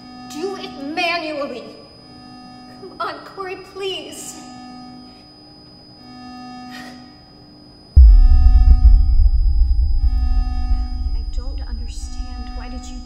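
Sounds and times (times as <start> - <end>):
deep bass boom: 8.0 - 13.0
held drone of steady tones: 8.0 - 13.0.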